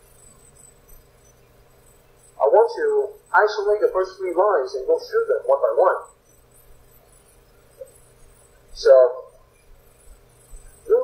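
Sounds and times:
faint steady hum: 0:00.0 - 0:11.0
man speaking: 0:02.4 - 0:06.1, 0:08.8 - 0:09.3.

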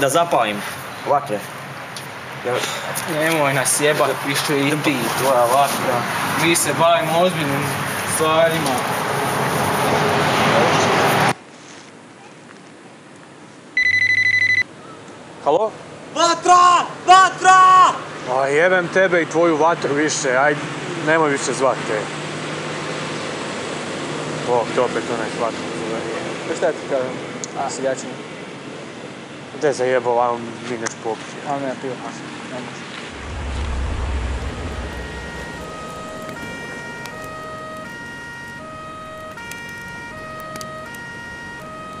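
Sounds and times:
mobile phone ringing: 0:13.8 - 0:14.6
deep explosion boom: 0:33.1 - 0:37.6
two-tone emergency siren: 0:33.2 - 0:42.0.

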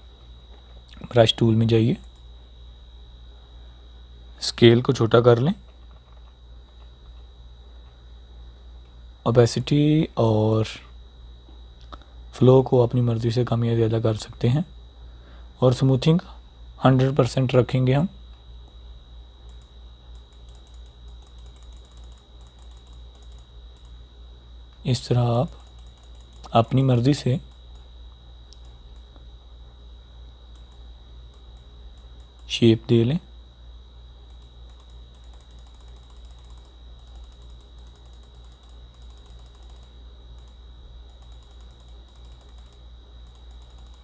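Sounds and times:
rapid computer clicking: 0:00.0 - 0:02.3, 0:05.4 - 0:08.0, 0:19.4 - 0:24.1, 0:24.7 - 0:29.3, 0:30.4 - 0:33.3, 0:34.1 - 0:44.0
low electrical hum: 0:00.0 - 0:44.0
thin high whine: 0:00.0 - 0:44.0.

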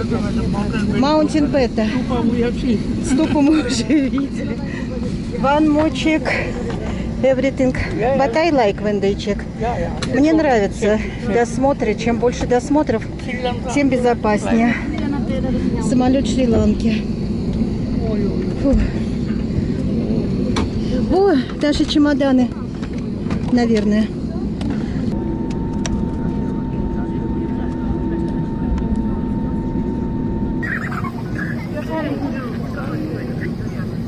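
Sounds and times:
low rumble in airliner cabin: 0:00.0 - 0:34.0
passengers' voices: 0:00.0 - 0:34.0.

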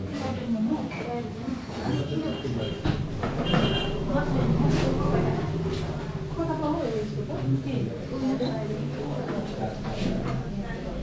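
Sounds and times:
people talking indistinctly: 0:00.0 - 0:11.0
low steady rumble: 0:03.6 - 0:08.1.

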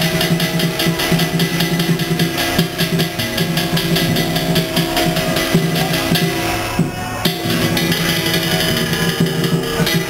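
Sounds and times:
percussion strikes: 0:00.0 - 0:10.0
ritual melody of held notes: 0:00.0 - 0:10.0.

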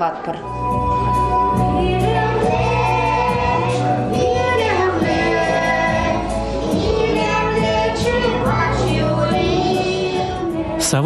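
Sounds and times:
instrumental accompaniment: 0:00.0 - 0:11.0
girls and woman singing: 0:01.5 - 0:11.0.

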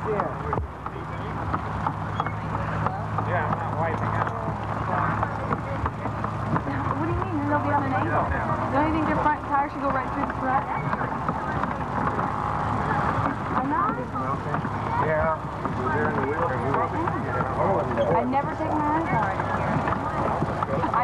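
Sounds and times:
low steady hum: 0:00.0 - 0:21.0
voices calling and talking: 0:00.0 - 0:21.0.

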